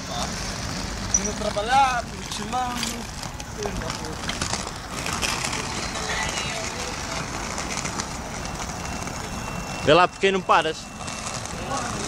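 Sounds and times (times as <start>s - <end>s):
skate wheels rolling over asphalt: 0.0s - 12.0s.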